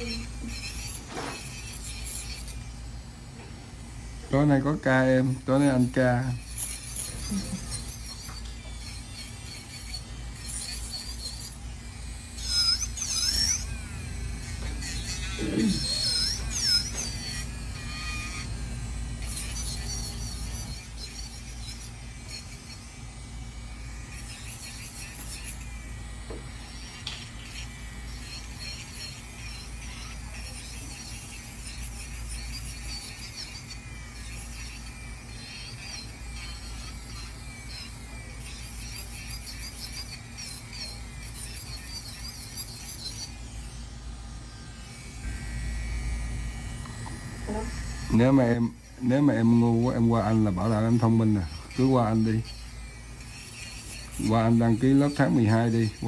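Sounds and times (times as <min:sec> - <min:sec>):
electric nail drill whining: 0:00.0 - 0:56.0.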